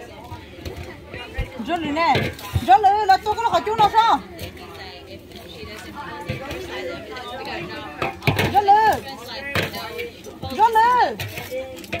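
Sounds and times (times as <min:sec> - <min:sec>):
voices talking and exclaiming: 0:00.0 - 0:12.0.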